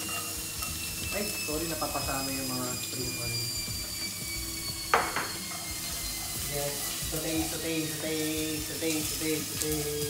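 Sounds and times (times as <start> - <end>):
spatula scraping a plate: 0.0 - 1.6, 3.7 - 8.2
knock against cookware: 5.0 - 5.3.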